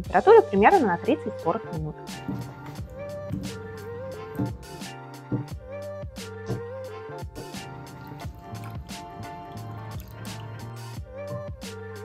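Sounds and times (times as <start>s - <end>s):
background music: 0.0s - 12.0s
marinade dripping and squishing: 7.4s - 11.0s.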